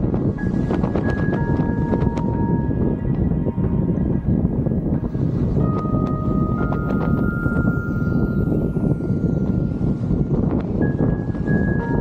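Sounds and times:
wind buffeting microphone: 0:00.0 - 0:12.0
faint held tones: 0:00.4 - 0:12.0.

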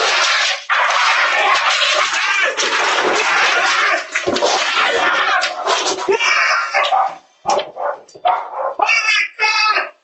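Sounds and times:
dogs barking: 0:04.7 - 0:09.2
man shouting: 0:08.8 - 0:10.0.

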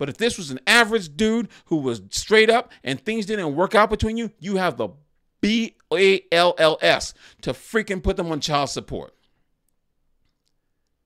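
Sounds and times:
person speaking: 0:00.0 - 0:09.2.

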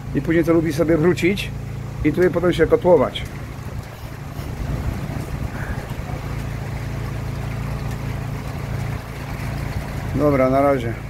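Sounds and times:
low hum: 0:00.0 - 0:10.2
storm wind through trees: 0:03.3 - 0:06.4.

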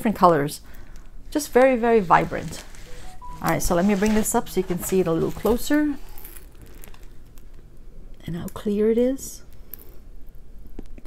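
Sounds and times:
canvas rustling and crinkling: 0:01.6 - 0:07.1.

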